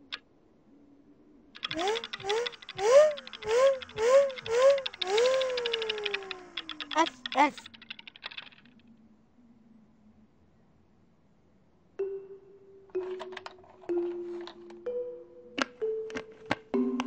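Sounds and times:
light dry clicks: 1.6 - 8.7.

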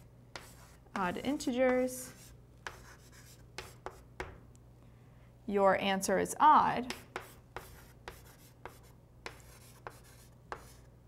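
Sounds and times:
chalk tapping and scraping on blackboard: 0.0 - 4.4, 6.8 - 10.9
chalk scratching: 0.3 - 4.0, 6.9 - 10.9.

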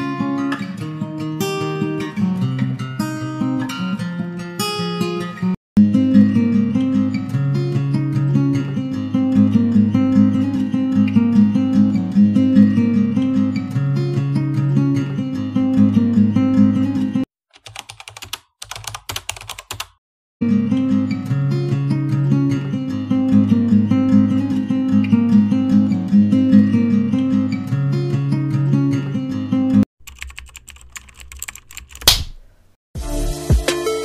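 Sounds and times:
acoustic guitar music: 0.0 - 17.2, 20.4 - 29.8
rapid keyboard typing clicks: 17.5 - 20.0, 30.0 - 32.3.

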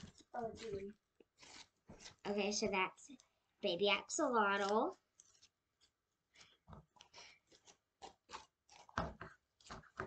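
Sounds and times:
slime squishing in hands: 4.1 - 10.0.

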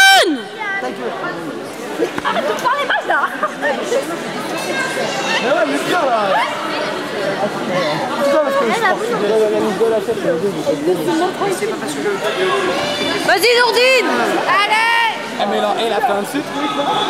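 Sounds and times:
loud shout: 0.0 - 0.7
spectators chattering and calling: 0.0 - 17.0.

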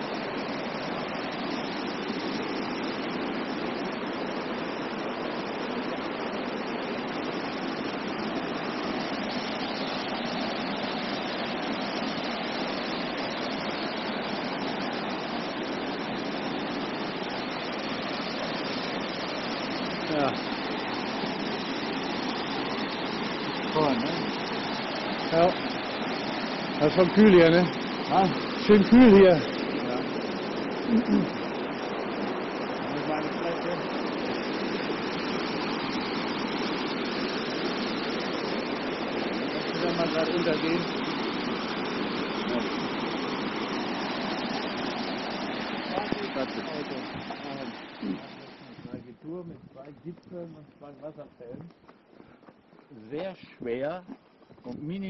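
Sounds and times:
waterfall rushing over rocks: 0.0 - 48.9.

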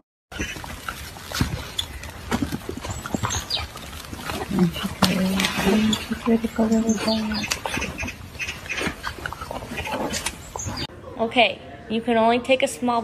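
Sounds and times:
puppies grunting and squeaking: 0.3 - 10.9.

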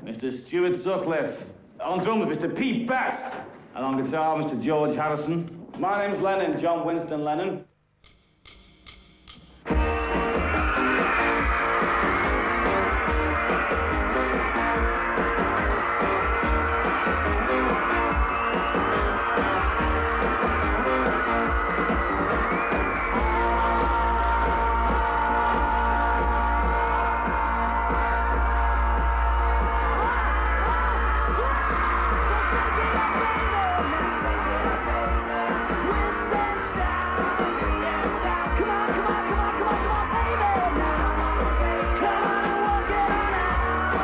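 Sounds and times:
rock and roll band with singing: 9.7 - 44.0.

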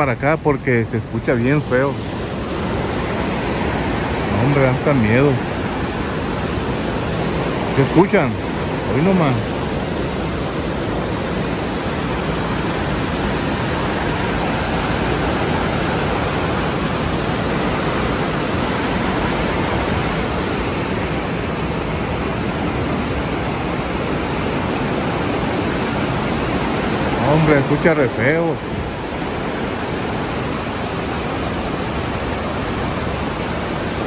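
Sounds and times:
rushing stream water: 0.0 - 34.0.

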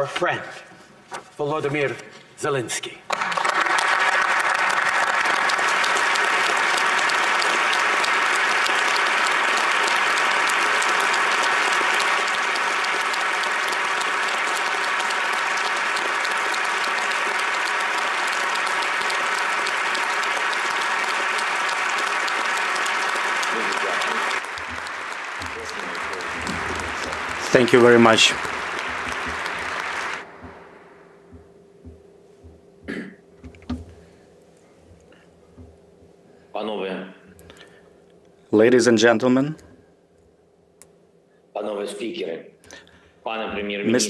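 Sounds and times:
crowd applauding: 3.1 - 31.2.

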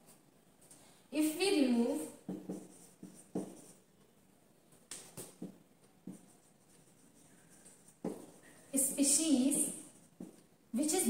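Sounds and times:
marker pen writing on whiteboard: 2.0 - 4.1, 4.7 - 10.6.

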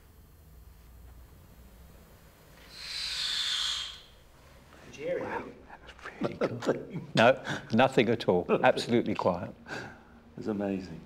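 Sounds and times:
breathy hiss: 2.5 - 6.2, 9.6 - 10.3.

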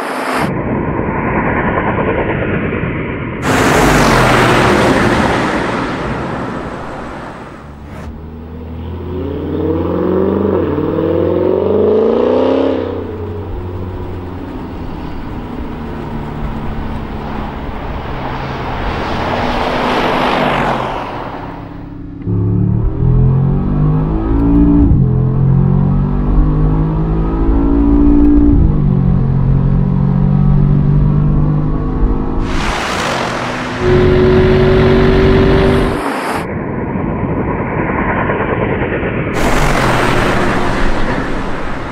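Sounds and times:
vehicles rushing past: 3.4 - 26.3, 32.0 - 36.5, 39.4 - 41.9
engines accelerating hard: 3.4 - 41.9.

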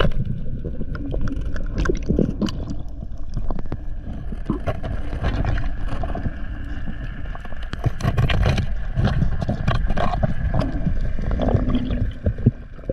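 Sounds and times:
scattered clicks and crackles: 0.0 - 12.9
water rumbling against camera housing: 0.0 - 12.9.

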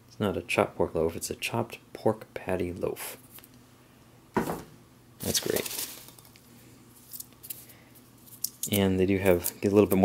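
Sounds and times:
packing peanuts rustling: 5.2 - 10.0.

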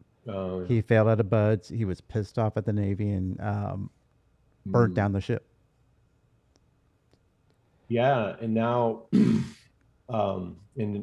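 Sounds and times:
man speaking: 0.3 - 3.9, 4.7 - 5.4, 7.9 - 9.5, 10.1 - 11.0.

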